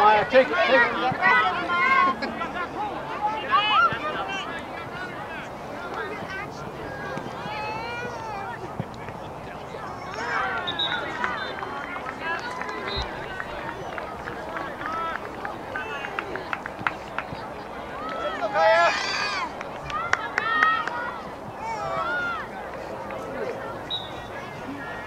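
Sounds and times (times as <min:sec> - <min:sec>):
people shouting and calling: 0:00.0 - 0:08.7, 0:17.9 - 0:22.6.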